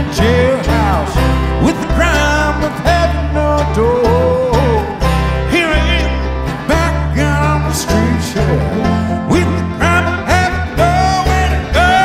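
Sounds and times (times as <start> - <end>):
acoustic guitars: 0.0 - 12.0
upright bass: 0.0 - 12.0.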